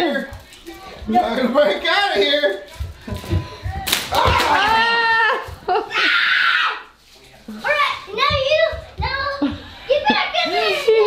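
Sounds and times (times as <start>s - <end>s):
child shrieking and squealing: 5.9s - 6.8s.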